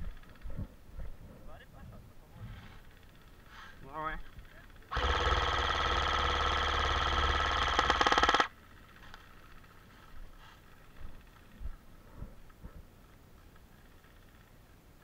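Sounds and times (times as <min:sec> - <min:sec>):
airsoft rifle full-auto burst: 0:04.9 - 0:08.6.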